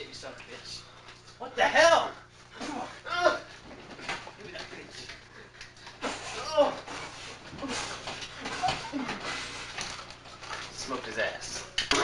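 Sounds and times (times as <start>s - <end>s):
vocal grunts or shouts: 2.6s - 3.5s, 6.2s - 6.9s.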